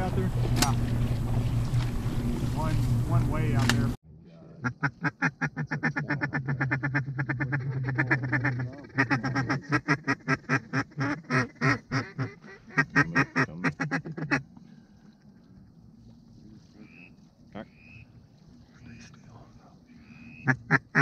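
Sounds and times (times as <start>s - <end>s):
duck call quacks: 4.6s - 14.4s, 16.8s - 18.1s, 20.0s - 21.0s.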